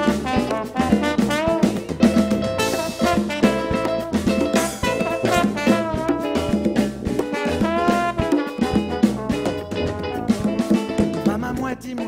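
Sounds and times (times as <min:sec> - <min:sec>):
trombone: 0:00.0 - 0:11.8
drum kit beat: 0:00.0 - 0:12.0
guitar: 0:00.0 - 0:12.0
percussion: 0:00.0 - 0:12.0.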